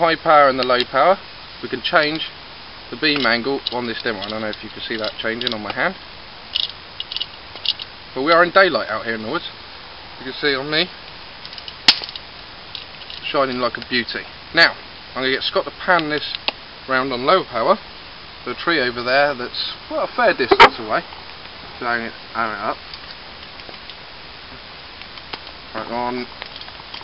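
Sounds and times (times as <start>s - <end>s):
outdoor background hiss: 0.0s - 27.0s
faint ticks of handling: 3.0s - 5.9s, 6.5s - 8.0s, 11.1s - 14.0s.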